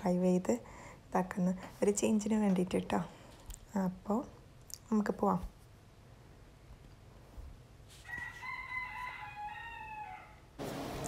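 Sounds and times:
rooster crowing: 8.0 - 10.6.

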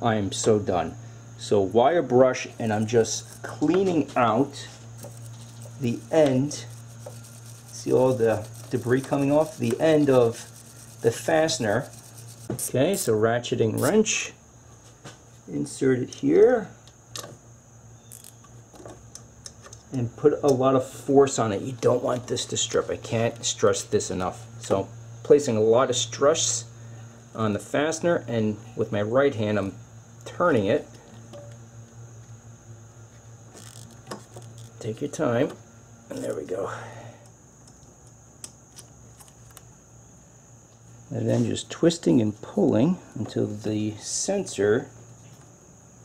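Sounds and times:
low steady hum: 0.0 - 46.0.

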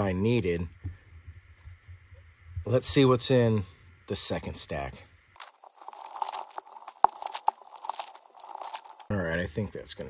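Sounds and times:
cards rustling: 5.4 - 9.1
foil wrappers crinkling: 5.4 - 9.1.

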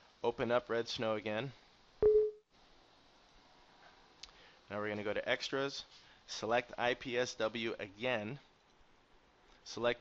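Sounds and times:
faint room noise: 0.0 - 10.0
short electronic beep: 2.0 - 2.4.

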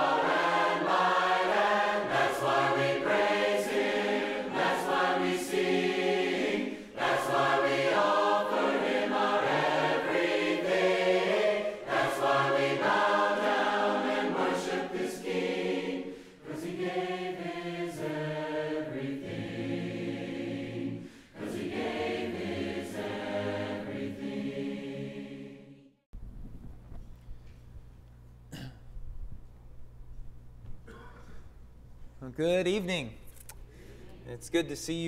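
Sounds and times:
choir singing a cappella: 0.0 - 26.0.

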